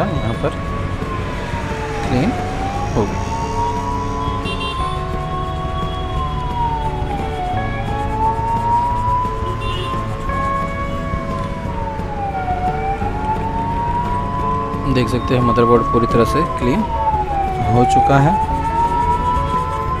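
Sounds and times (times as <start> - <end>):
music with held chords: 0.0 - 20.0
siren-like tone: 0.0 - 20.0.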